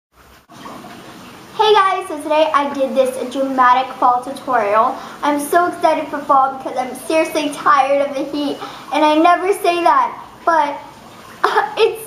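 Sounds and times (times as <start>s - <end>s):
quiet steady hiss: 0.3s - 12.0s
girl speaking loudly: 1.6s - 12.0s.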